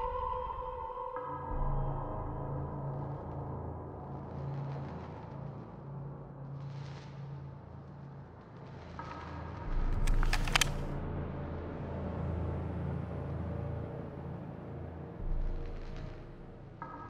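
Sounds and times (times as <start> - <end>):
sharp cracks: 9.9 - 10.9.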